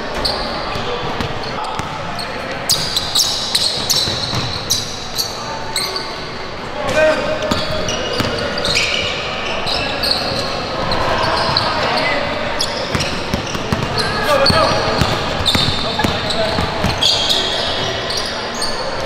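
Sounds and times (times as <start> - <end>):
sneaker squeaks: 0.0 - 19.0
basketball bouncing on wooden floor: 3.8 - 4.6, 12.9 - 17.1.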